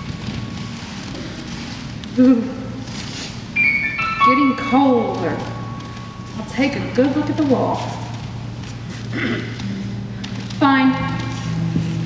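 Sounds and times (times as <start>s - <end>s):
sustained low music notes: 0.0s - 12.0s
woman clearing her throat: 9.1s - 9.6s.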